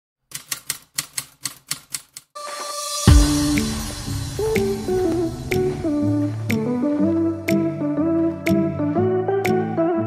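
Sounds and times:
typewriter keys clacking: 0:00.3 - 0:02.4.

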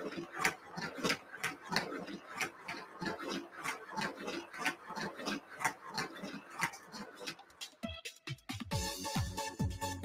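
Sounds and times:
magnetic toy clicking: 0:00.0 - 0:07.9.

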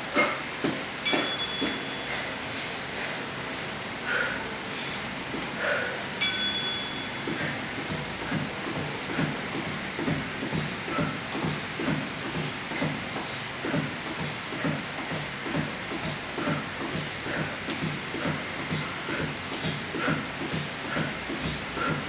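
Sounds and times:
bell-like chime: 0:01.0 - 0:02.2, 0:06.2 - 0:07.3.

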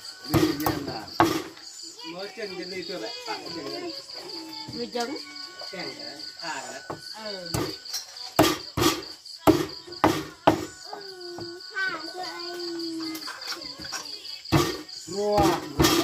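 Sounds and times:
crickets chirping: 0:00.0 - 0:16.0
knife chopping on wooden board: 0:00.3 - 0:01.6, 0:08.4 - 0:10.7, 0:14.6 - 0:14.8, 0:15.4 - 0:16.0.

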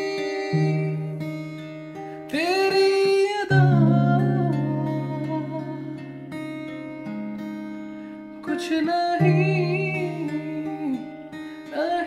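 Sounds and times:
man singing: 0:00.0 - 0:01.4, 0:02.2 - 0:06.0, 0:08.4 - 0:12.0
acoustic guitar chord strummed: 0:00.0 - 0:12.0.

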